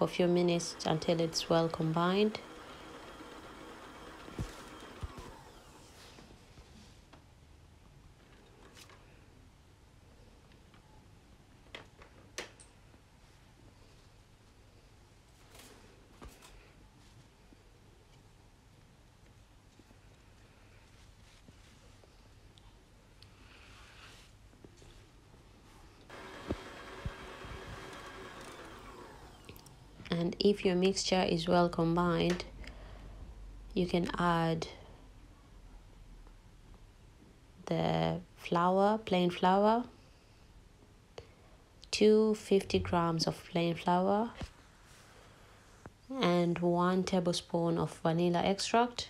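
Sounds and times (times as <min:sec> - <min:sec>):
stand mixer motor humming: 0:00.6 - 0:06.0, 0:26.1 - 0:29.7.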